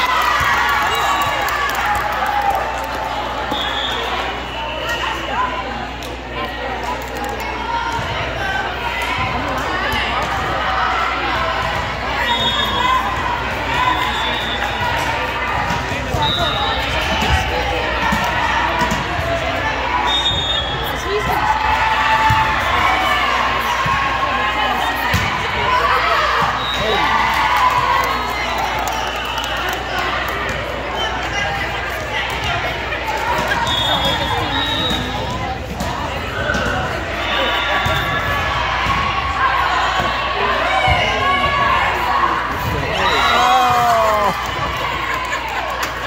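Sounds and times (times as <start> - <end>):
spectators cheering: 0.0 - 5.3, 36.4 - 46.0
players calling and shouting: 0.0 - 46.0.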